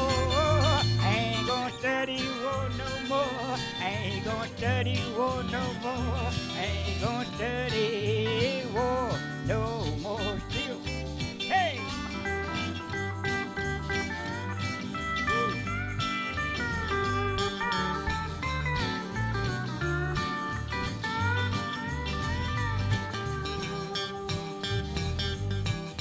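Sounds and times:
pedal steel guitar sliding notes: 0.0s - 4.4s, 11.2s - 26.0s
country band instrumental: 0.0s - 26.0s.

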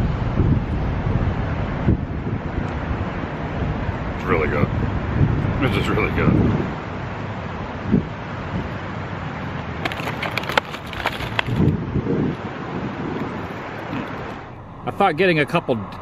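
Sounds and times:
wind on microphone: 0.0s - 14.8s
steady outdoor hum: 0.0s - 16.0s
cardboard box rustling: 9.8s - 11.7s.

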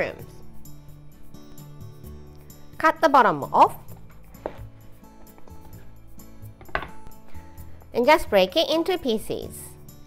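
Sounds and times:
soft background music: 0.0s - 10.0s
knife knocking on cutting board: 6.6s - 7.0s
handling noise: 6.6s - 7.1s.

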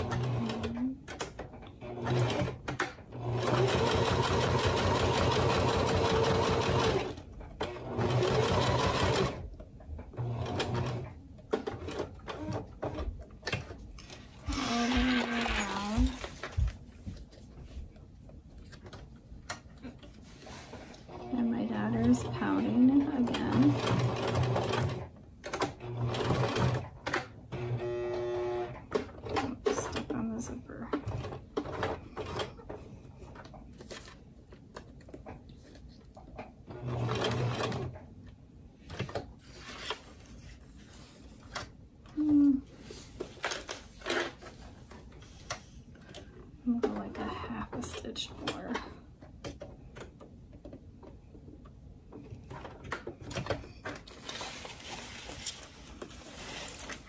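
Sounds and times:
sewing machine stitching: 0.0s - 9.5s, 10.1s - 13.1s, 21.1s - 30.0s, 36.7s - 38.0s.

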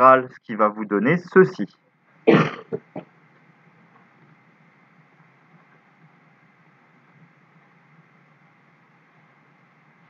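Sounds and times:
man clearing his throat: 2.3s - 3.1s.

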